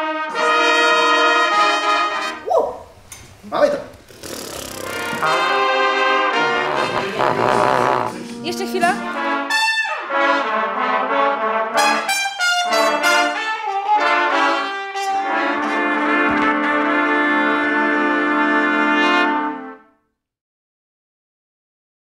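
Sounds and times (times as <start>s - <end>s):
trumpets playing: 0.0s - 2.4s, 4.8s - 19.9s.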